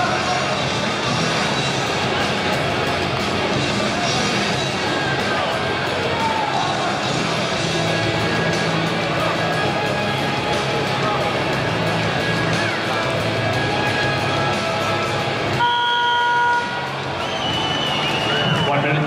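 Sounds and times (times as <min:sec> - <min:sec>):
arena music: 0:00.0 - 0:19.0
crowd noise: 0:00.0 - 0:19.0
timing horn blast: 0:15.6 - 0:16.9
high whistle: 0:15.6 - 0:18.9.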